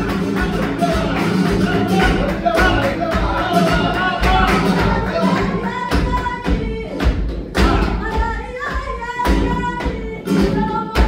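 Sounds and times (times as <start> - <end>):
flamenco guitar playing: 0.0 - 11.0
rhythmic handclaps: 0.0 - 11.0.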